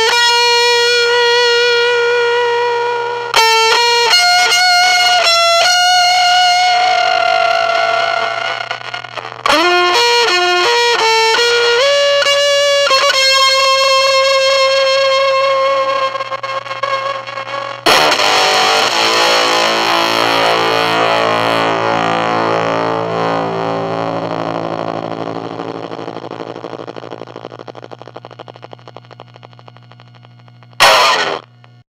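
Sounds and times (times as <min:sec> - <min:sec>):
fuzz electric guitar chord: 0:00.0 - 0:31.8.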